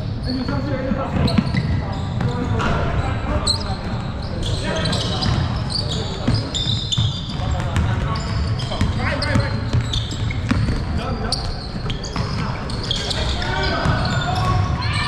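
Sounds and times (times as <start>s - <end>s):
sneaker squeaks: 0.0s - 15.0s
basketball dribbling: 4.8s - 14.8s
players shouting indistinctly: 13.2s - 15.0s.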